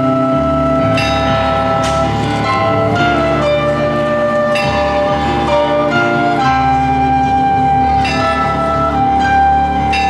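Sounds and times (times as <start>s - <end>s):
church bells ringing: 0.0s - 10.0s
instrumental backing: 0.0s - 10.0s.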